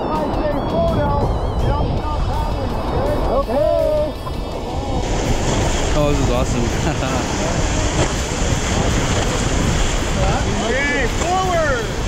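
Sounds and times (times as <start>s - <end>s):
wavering pitched sounds: 0.0s - 5.0s
wind on microphone: 0.0s - 12.0s
river rapids rushing and splashing: 1.9s - 12.0s.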